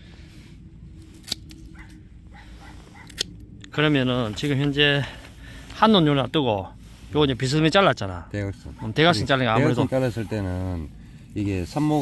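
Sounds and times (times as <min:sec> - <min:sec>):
pruning shears snip: 0:01.0 - 0:02.0.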